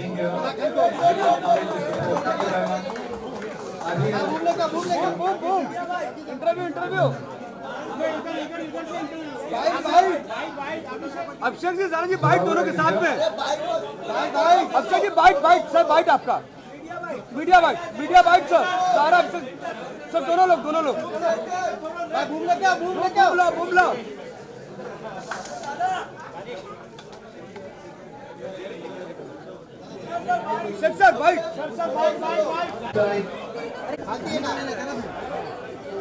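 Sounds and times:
people chattering: 0.0s - 36.0s.

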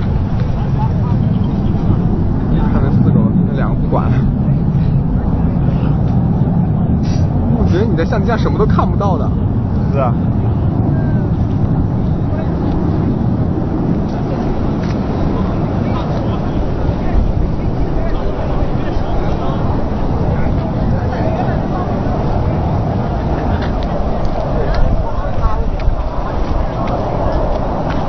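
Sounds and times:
crowd voices: 0.0s - 28.0s
loud aircraft engine: 0.0s - 28.0s.

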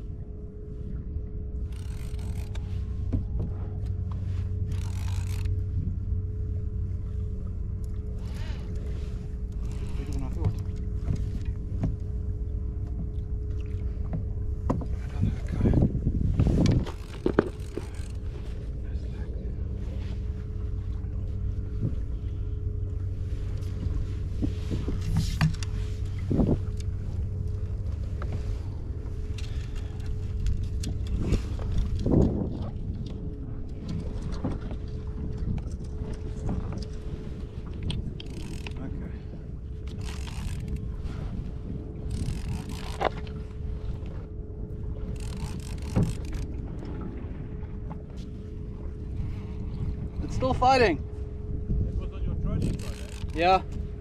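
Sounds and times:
steady low hum: 0.0s - 54.0s
fishing reel winding: 1.7s - 2.6s, 4.7s - 5.5s, 16.9s - 18.2s, 38.2s - 38.8s, 39.9s - 40.8s, 42.1s - 43.1s, 45.1s - 46.5s, 52.6s - 53.6s.

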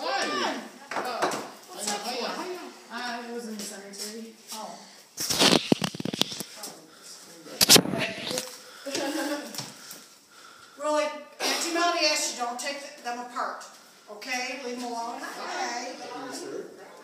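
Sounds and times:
voices: 10.8s - 17.0s.

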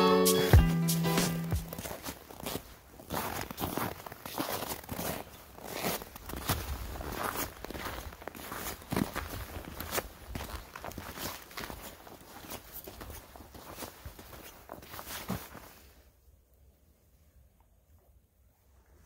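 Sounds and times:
footsteps crunching on snow and gravel: 0.4s - 16.0s.

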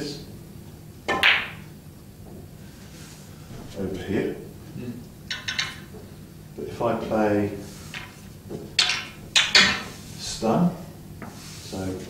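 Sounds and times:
cue tip striking ball: 1.1s - 1.7s
snooker balls colliding: 1.1s - 1.8s, 5.2s - 6.1s, 8.0s - 10.1s.

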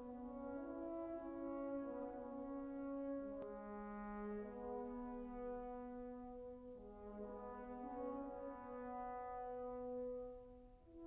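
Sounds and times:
french horn solo: 0.0s - 11.0s.

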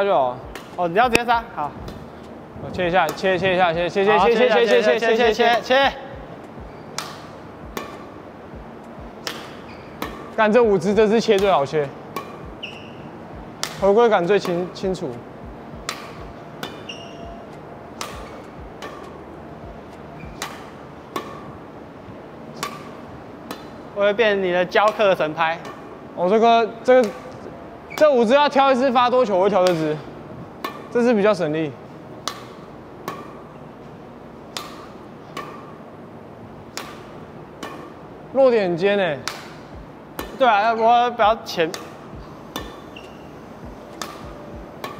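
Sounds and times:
badminton racket hitting shuttlecock: 0.4s - 2.3s, 2.9s - 21.8s, 22.4s - 24.0s, 24.6s - 26.0s, 26.9s - 28.3s, 29.5s - 31.0s, 32.2s - 35.9s, 36.5s - 38.2s, 39.2s - 44.9s.

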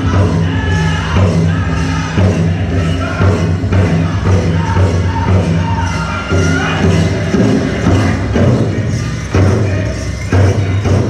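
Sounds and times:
large drum beaten with sticks: 0.0s - 11.0s
men singing in unison: 0.0s - 11.0s.

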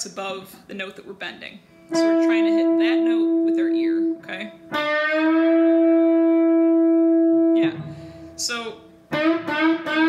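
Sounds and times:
electric guitar note bending: 1.9s - 10.0s.

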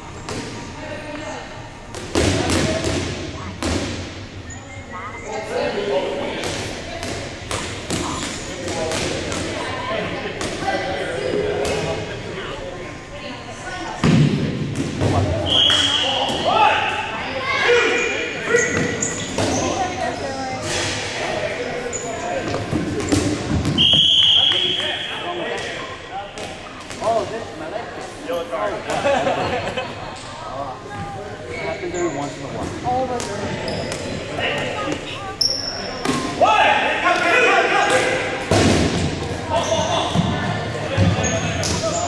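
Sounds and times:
balls bouncing on gym floor: 1.9s - 4.2s, 6.4s - 9.6s, 14.0s - 15.4s, 22.4s - 24.7s, 37.9s - 42.0s
referee's whistle: 15.4s - 16.3s, 23.8s - 25.3s.

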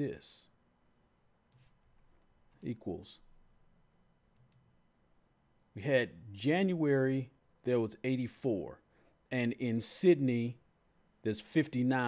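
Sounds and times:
faint computer mouse clicks: 1.5s - 2.3s, 4.3s - 4.7s.

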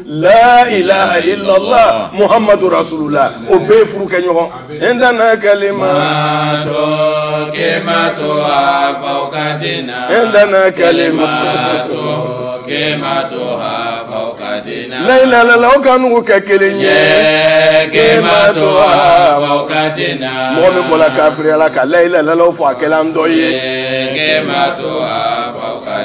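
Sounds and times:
men chanting together: 0.0s - 15.8s, 16.6s - 26.0s.

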